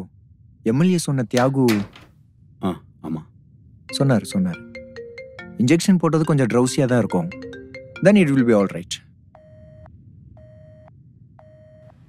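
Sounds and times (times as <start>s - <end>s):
man talking: 0.7s - 2.0s, 3.9s - 4.6s, 5.6s - 7.4s, 8.0s - 9.0s
mobile phone ringtone melody: 3.9s - 8.8s.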